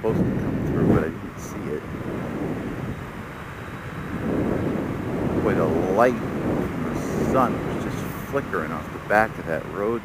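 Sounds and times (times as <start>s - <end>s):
motorcycle engine at road speed: 0.0s - 10.0s
wind buffeting microphone: 0.0s - 10.0s.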